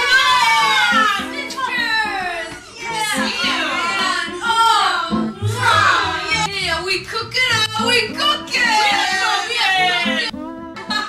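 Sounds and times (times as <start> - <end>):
women shrieking excitedly: 0.0 - 1.2
background music: 0.1 - 11.0.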